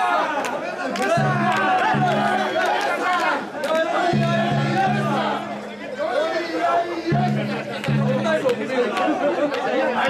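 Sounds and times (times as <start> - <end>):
crowd chanting in rhythm: 0.0 - 10.0
sharp clacks: 7.2 - 10.0.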